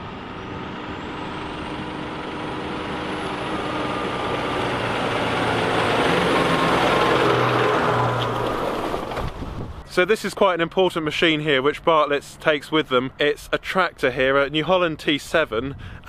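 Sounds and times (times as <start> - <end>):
tractor diesel engine running: 0.0 - 16.0.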